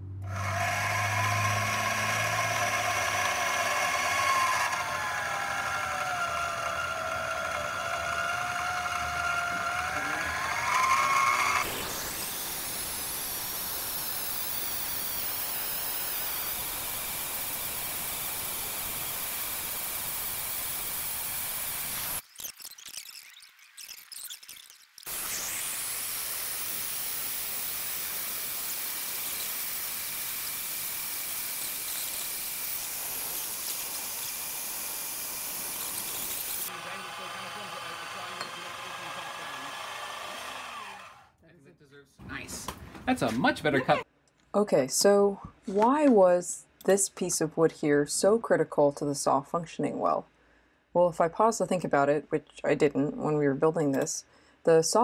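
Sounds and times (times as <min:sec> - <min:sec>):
bandsaw cutting metal: 0:00.2 - 0:22.2, 0:25.0 - 0:41.4.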